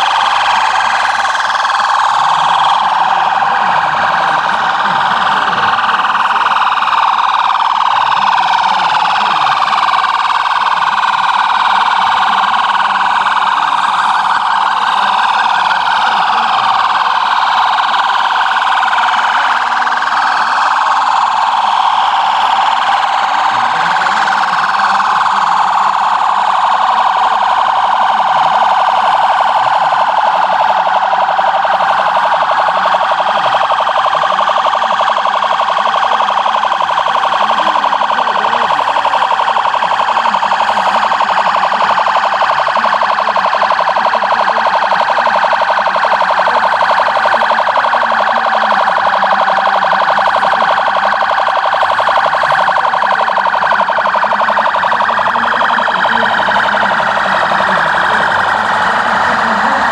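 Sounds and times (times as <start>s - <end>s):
fast-pulsing siren: 0.0s - 59.9s
siren gliding up and down: 0.0s - 59.9s.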